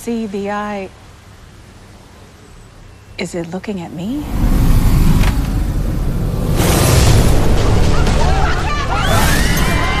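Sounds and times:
deep loud rumble: 4.2 - 8.4.

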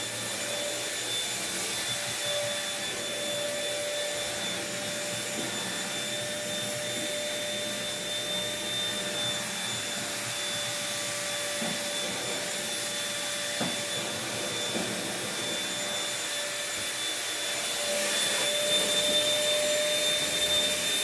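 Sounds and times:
vacuum cleaner motor whine: 0.0 - 21.0.

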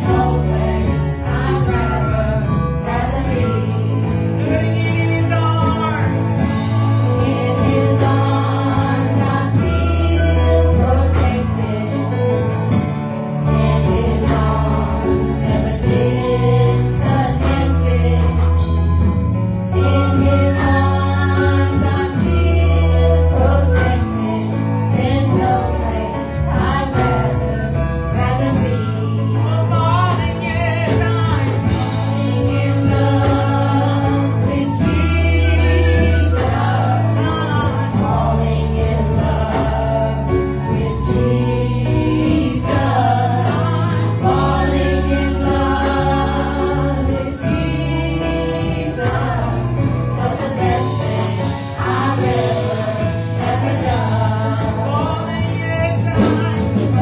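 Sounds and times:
guitars: 0.0 - 57.0
keyboard: 0.0 - 57.0
singers in harmony: 0.0 - 57.0
sustained bass line: 0.0 - 57.0
worship band playing gospel: 0.0 - 57.0.

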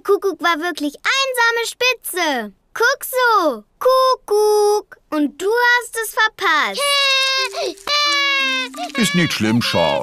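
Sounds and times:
cartoon toddler crying: 6.8 - 10.0.

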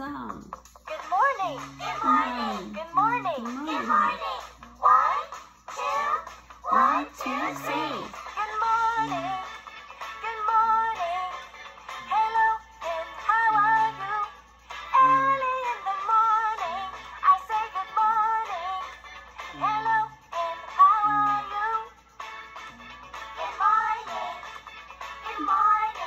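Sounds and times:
children's song sung over music: 0.9 - 22.0, 22.6 - 26.0.

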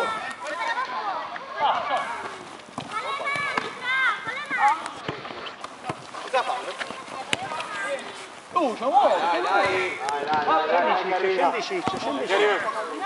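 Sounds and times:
ball being kicked: 2.7 - 3.8, 11.8 - 12.2.

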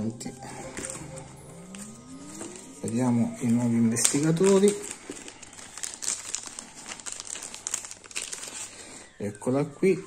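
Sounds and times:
plastic bag crinkling: 1.7 - 9.5.

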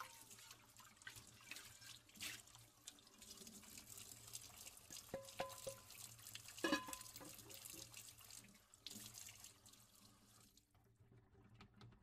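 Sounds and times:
tap water running into sink: 0.0 - 10.6
dishes knocking: 6.6 - 7.0
crockery clinking: 6.6 - 7.2.

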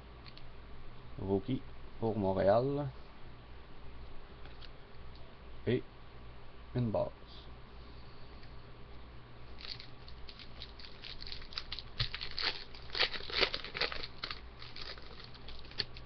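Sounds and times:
plastic wrapper crinkling: 9.6 - 16.0.

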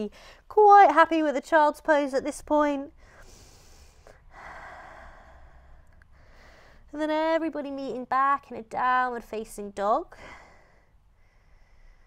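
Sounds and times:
woman breathing: 0.1 - 0.5, 2.9 - 6.9, 10.1 - 12.0.

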